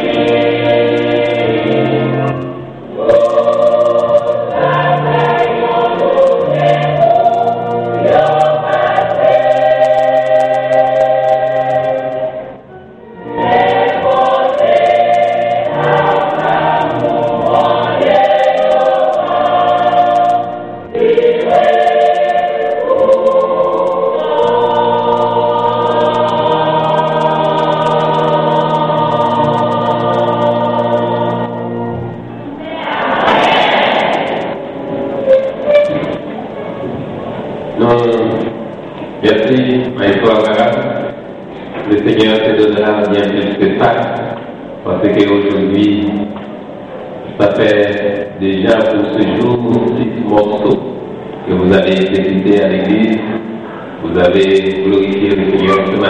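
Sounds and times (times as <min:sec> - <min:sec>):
church choir singing: 0:00.0 - 0:56.0.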